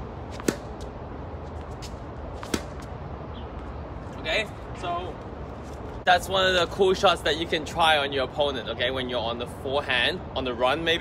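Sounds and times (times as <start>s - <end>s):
tennis ball pops on hard court: 0.4s - 0.7s, 2.4s - 2.9s.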